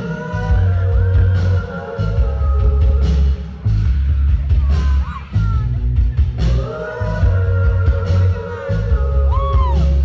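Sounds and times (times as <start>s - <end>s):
live rock band playing: 0.0s - 10.0s
kick drum and bass beat: 0.4s - 10.0s.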